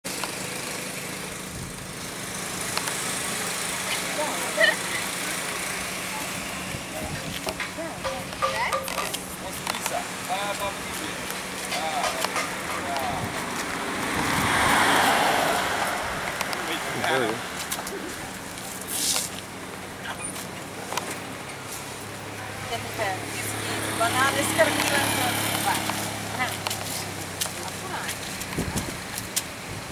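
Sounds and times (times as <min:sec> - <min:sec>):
road traffic noise: 0:00.0 - 0:29.9
vehicle engine running: 0:00.0 - 0:29.9
people talking and calling out: 0:02.6 - 0:29.6
faint voices: 0:03.7 - 0:13.9, 0:15.5 - 0:29.2.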